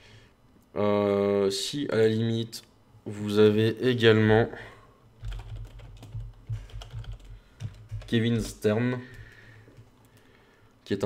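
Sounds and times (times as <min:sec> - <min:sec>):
typing on keyboard: 0:05.2 - 0:08.6.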